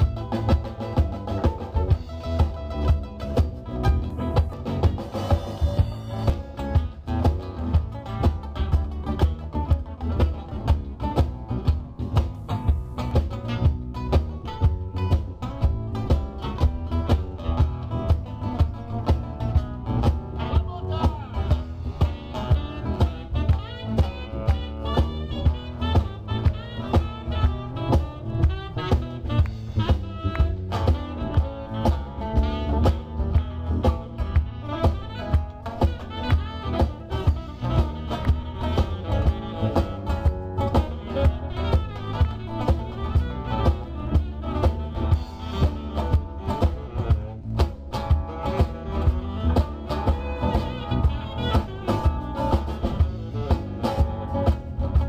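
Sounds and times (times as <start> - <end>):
blues band playing: 0.0 - 55.0.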